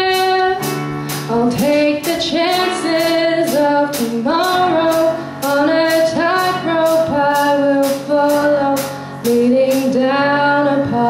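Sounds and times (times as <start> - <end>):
young woman singing: 0.0 - 11.0.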